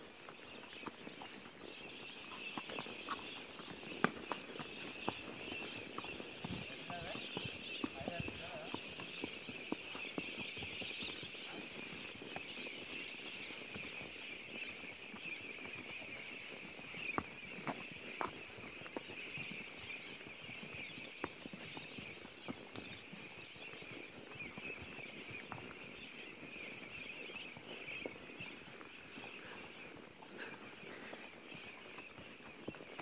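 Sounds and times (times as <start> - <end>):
horse hooves on dirt: 0.0 - 33.0.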